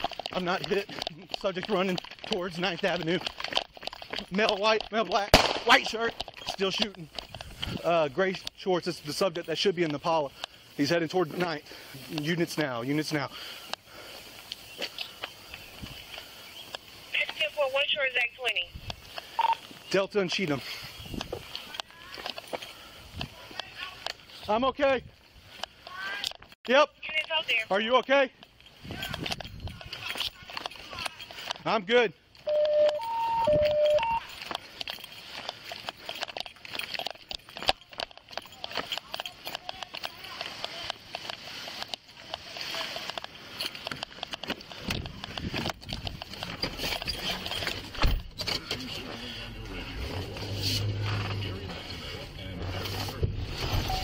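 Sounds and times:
duty gear jostling: 0.0s - 24.6s, 25.2s - 54.0s
footsteps on grass and pavement: 0.0s - 25.9s, 27.2s - 32.5s, 34.2s - 47.9s
police radio two-tone alert beeps: 19.4s - 19.6s, 32.5s - 34.3s.

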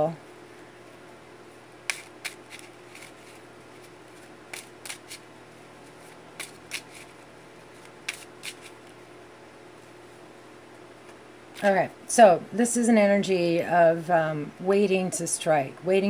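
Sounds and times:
faint steady hum: 0.0s - 16.0s
cards being shuffled: 1.8s - 9.0s.

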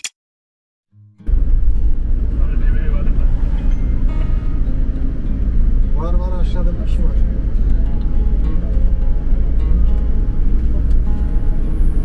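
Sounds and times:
bus engine and road noise: 1.3s - 12.0s.

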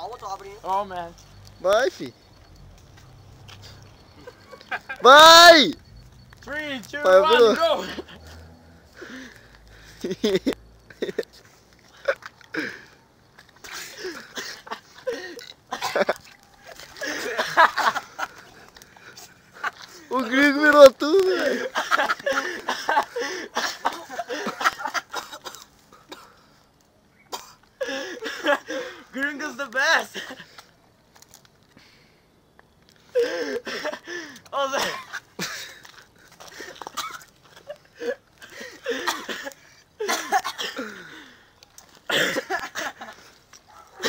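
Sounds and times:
young men shouting and laughing: 3.5s - 12.9s, 13.6s - 25.6s, 27.8s - 30.6s, 33.1s - 43.4s
coughing: 13.6s - 18.0s, 21.3s - 26.4s, 27.3s - 29.0s, 33.1s - 35.9s, 36.6s - 41.3s, 42.0s - 43.2s.

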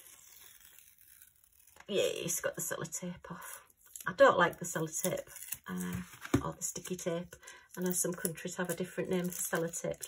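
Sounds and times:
tape peeling off paper: 0.0s - 2.0s.

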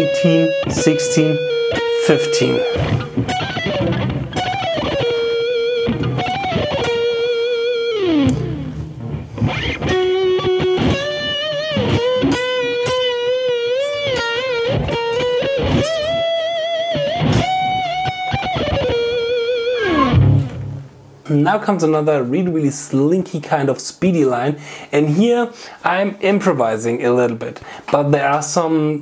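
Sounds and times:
distorted electric guitar melody: 0.0s - 21.2s.

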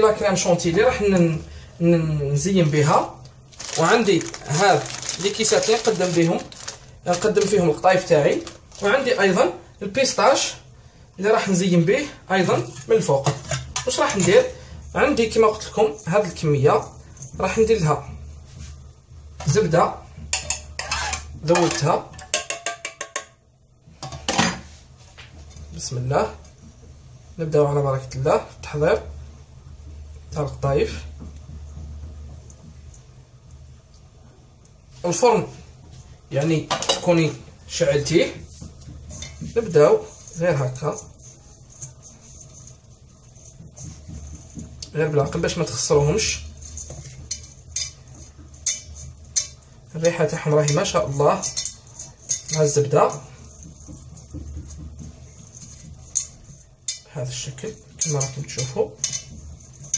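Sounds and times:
scratchy rustles of pastry strands: 2.7s - 13.2s, 37.1s - 59.9s
metal saucepan clinking utensils: 20.3s - 23.4s, 45.2s - 59.9s.

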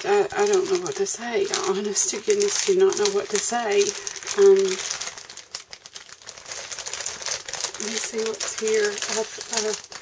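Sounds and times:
cellophane bag crinkling: 0.0s - 10.0s.

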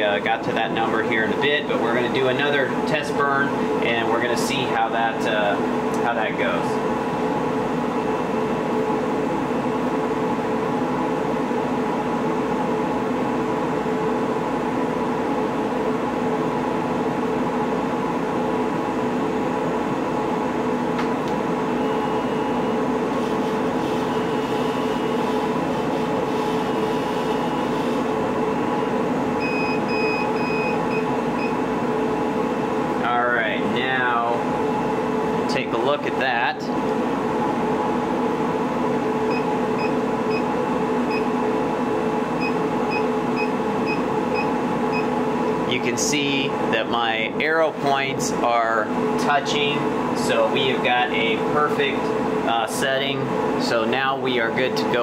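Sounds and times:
exhaust fan: 0.0s - 55.0s
water chiller drone: 0.0s - 55.0s.

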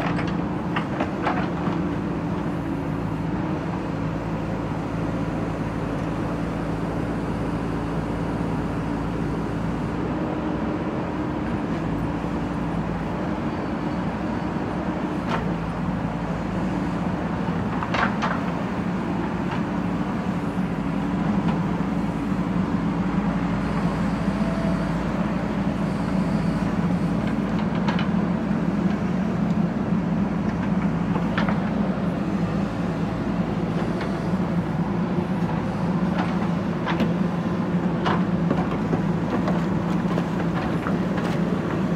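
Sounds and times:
diesel engine running: 0.0s - 41.9s.

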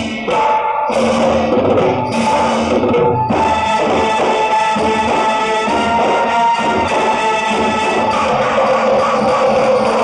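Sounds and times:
steady percussion: 0.0s - 10.0s.

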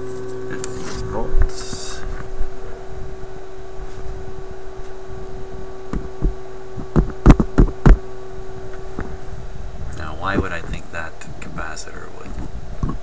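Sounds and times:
tube radio hum: 0.0s - 13.0s.

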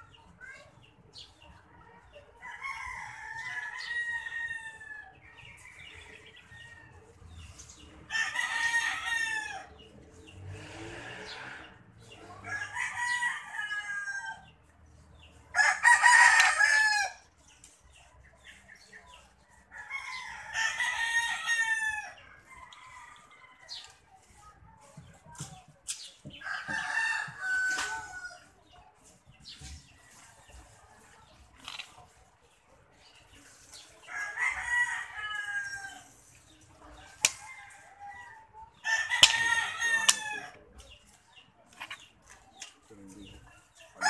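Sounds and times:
roosters crowing: 2.3s - 14.7s, 15.3s - 17.4s, 19.2s - 24.3s, 26.3s - 28.8s, 33.7s - 41.1s.

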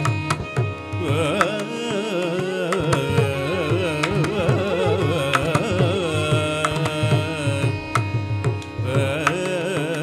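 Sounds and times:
violin: 0.0s - 10.0s
men singing: 1.0s - 8.1s, 8.8s - 10.0s.

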